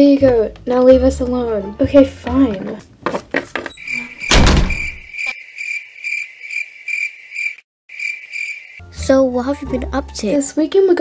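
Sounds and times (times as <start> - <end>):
crickets chirping sound effect: 3.8 - 8.9
loud door thud: 4.0 - 5.1.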